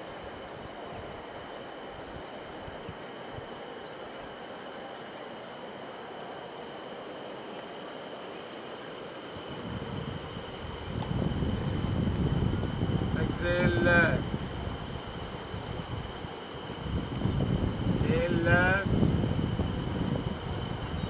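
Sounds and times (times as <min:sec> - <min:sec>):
wind rumbling on microphone: 0:00.0 - 0:04.5, 0:09.0 - 0:21.0
fast-flowing river rushing: 0:00.0 - 0:17.0.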